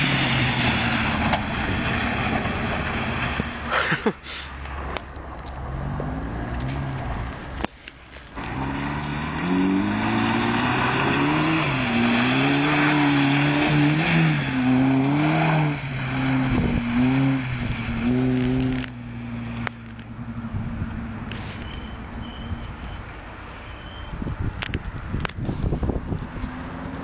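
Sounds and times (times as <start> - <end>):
car engine revving: 0.0 - 3.7, 8.3 - 21.6.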